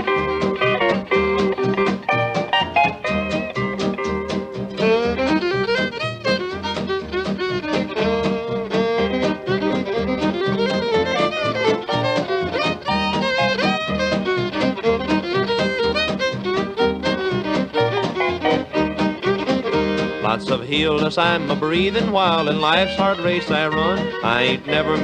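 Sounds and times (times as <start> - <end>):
bass: 0.0 - 25.0
fiddle melody: 0.0 - 25.0
rhythm guitar: 0.0 - 25.0.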